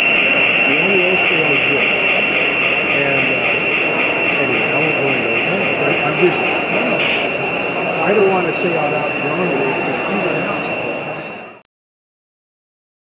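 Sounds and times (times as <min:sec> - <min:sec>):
steady high-pitched hiss: 0:00.0 - 0:11.4
people chattering indistinctly: 0:00.0 - 0:11.6.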